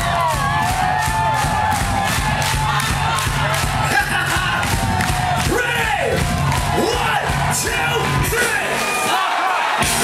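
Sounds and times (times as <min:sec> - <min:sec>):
drums on a steady beat: 0:00.0 - 0:09.2, 0:09.8 - 0:10.0.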